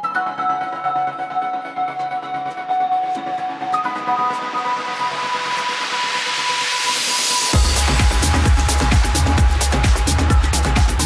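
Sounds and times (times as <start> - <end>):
white-noise sweep rising: 4.6 - 10.8.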